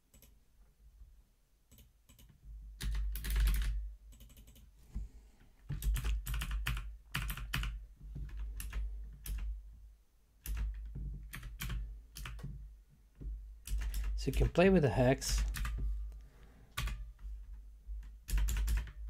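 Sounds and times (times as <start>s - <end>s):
typing on a computer keyboard: 0.1s - 0.4s, 1.7s - 4.7s, 5.7s - 9.5s, 10.4s - 12.6s, 13.6s - 14.6s, 15.3s - 15.8s, 16.8s - 17.2s, 18.0s - 19.0s.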